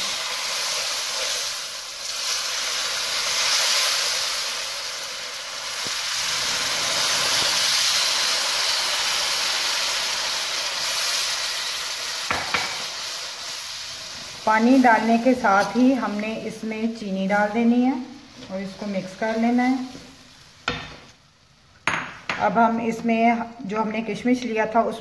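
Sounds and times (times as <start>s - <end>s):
hot water pouring: 0.0s - 14.5s
sizzling and bubbling in a pan: 0.0s - 24.3s.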